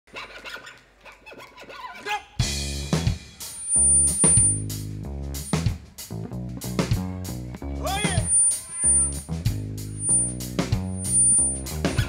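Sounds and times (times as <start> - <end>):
fiddle with scratchy bow strokes: 3.4 - 4.6, 7.9 - 12.0.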